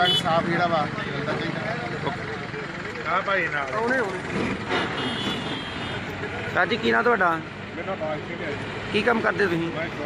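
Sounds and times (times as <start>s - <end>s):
road traffic: 0.0s - 10.0s
bus engine running: 0.4s - 10.0s.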